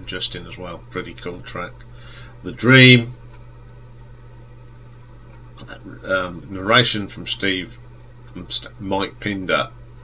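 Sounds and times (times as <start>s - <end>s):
faint room hiss: 0.0s - 10.0s
steady low hum: 0.0s - 10.0s.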